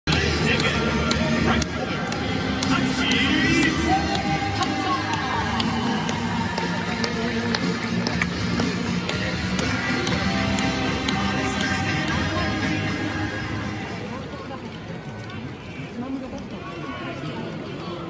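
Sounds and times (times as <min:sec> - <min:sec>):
song over stadium loudspeakers: 0:00.1 - 0:14.1.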